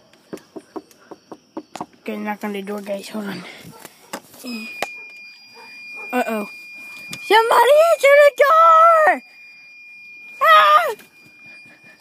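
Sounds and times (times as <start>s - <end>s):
steady high-pitched tone: 0.0s - 12.0s.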